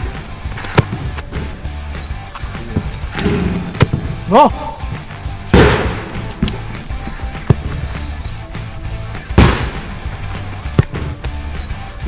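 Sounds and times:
music with low beat: 0.0s - 12.0s
football struck hard: 0.6s - 1.5s, 2.7s - 4.4s, 5.4s - 7.8s, 9.2s - 11.3s.

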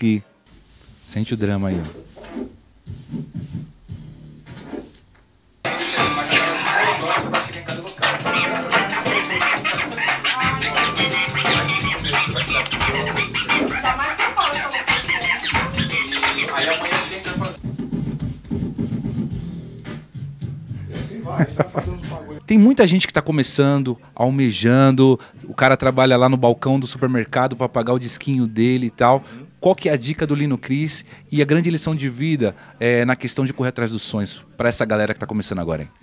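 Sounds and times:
vinyl record scratching: 1.2s - 22.5s
loud music: 5.6s - 22.4s.

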